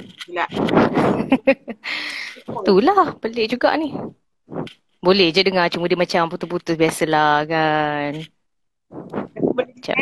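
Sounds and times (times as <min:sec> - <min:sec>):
woman laughing and speaking: 0:00.8 - 0:01.8.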